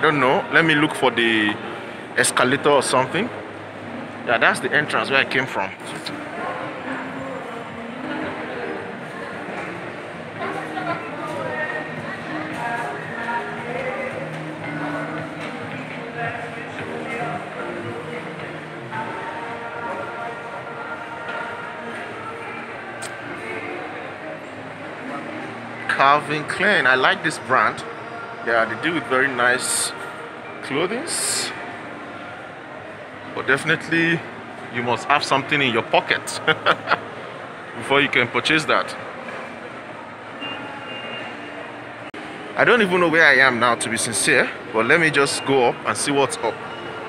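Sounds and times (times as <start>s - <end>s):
hall noise: 0.0s - 47.0s
shopping mall background noise: 0.0s - 47.0s.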